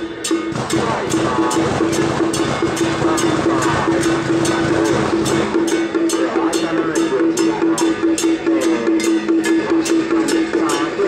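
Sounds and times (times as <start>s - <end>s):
drums: 0.0s - 11.0s
wood block clacking: 0.3s - 11.0s.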